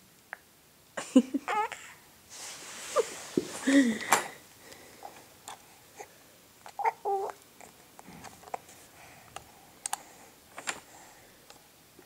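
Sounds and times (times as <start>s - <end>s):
baby high-pitched vocal sound: 6.8s - 7.4s.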